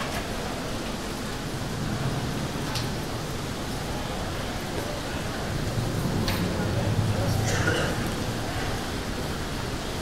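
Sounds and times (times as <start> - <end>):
steady wash of noise: 0.4 - 10.0.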